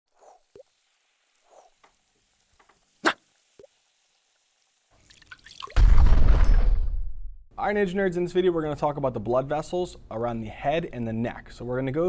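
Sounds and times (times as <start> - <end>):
rising fizz: 0.1 - 6.0
cartoon drips and plops: 0.2 - 0.8, 5.0 - 5.8
loud cartoon explosion: 5.8 - 7.3.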